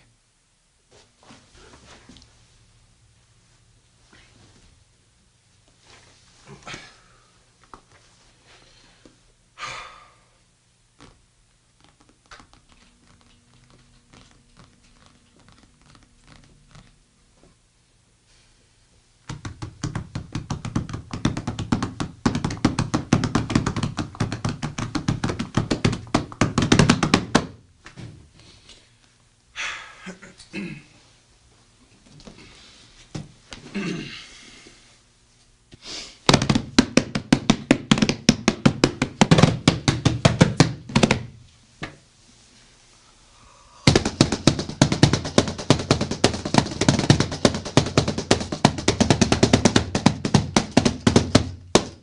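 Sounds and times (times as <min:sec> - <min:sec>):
hands drumming on a briefcase: 0:19.3 - 0:27.6, 0:36.3 - 0:41.4, 0:43.9 - 0:52.0.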